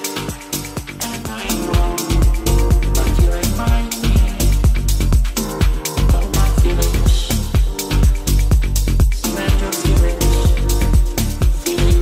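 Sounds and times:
house dance music: 0.0 - 12.0.

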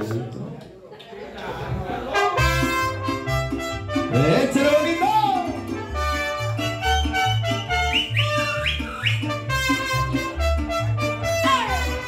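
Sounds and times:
mariachi band playing: 1.6 - 12.0.

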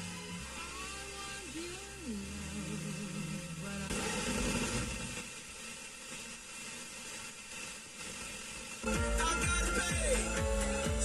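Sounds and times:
loud music from radio: 0.0 - 5.4, 8.2 - 11.0
radio static hiss: 0.0 - 11.0.

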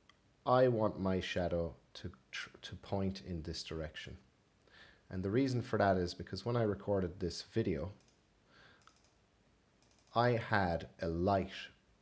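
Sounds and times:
computer mouse clicks: 8.0 - 9.2, 9.8 - 10.2.

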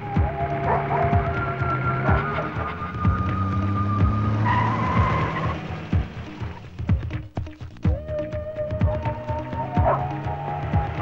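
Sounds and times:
vehicle engine running: 0.0 - 8.1, 8.8 - 11.0
background music with steady beat: 0.0 - 11.0
tyres skidding: 0.0 - 11.0.

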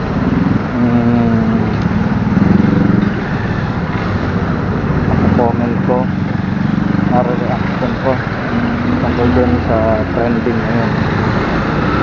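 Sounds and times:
motorcycle engine running: 0.0 - 12.0
traffic: 0.0 - 12.0
person speaking: 0.7 - 1.8, 5.2 - 6.1, 7.1 - 11.0.

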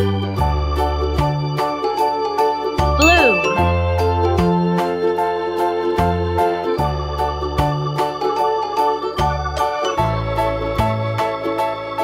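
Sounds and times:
pitch glide sound effect with ding: 3.0 - 4.8
children's keyboard music: 3.0 - 5.0.

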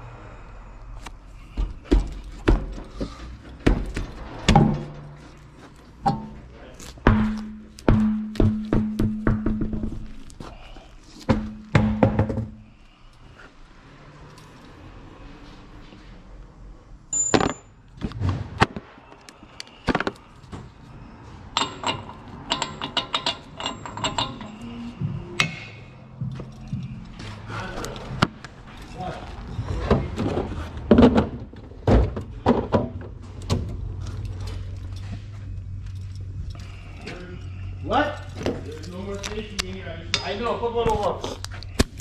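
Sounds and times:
tools clinking and knocking: 1.9 - 10.1, 17.1 - 17.7, 21.5 - 27.1.

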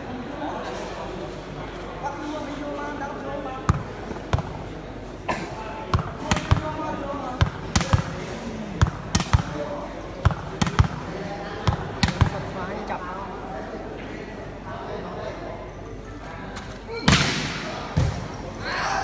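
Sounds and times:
murmur of crowd voices: 0.0 - 19.0
volleyball being struck: 7.4 - 9.6, 10.2 - 12.5, 17.1 - 18.3.

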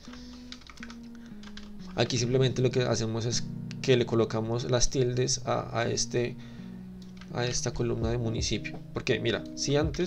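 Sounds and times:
keyboard keystrokes: 0.0 - 2.1
soft background music: 0.0 - 10.0.

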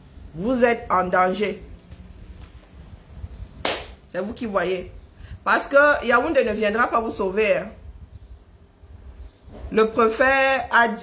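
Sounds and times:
low room rumble: 0.0 - 10.9.

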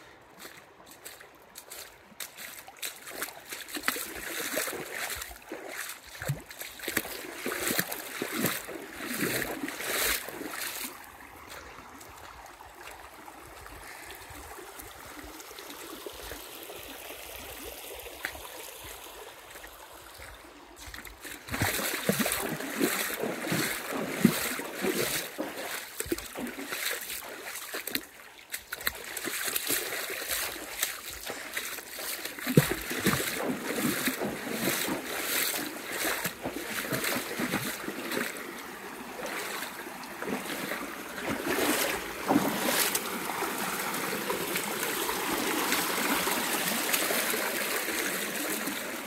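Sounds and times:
water splashing in rocky creek: 0.0 - 49.0.

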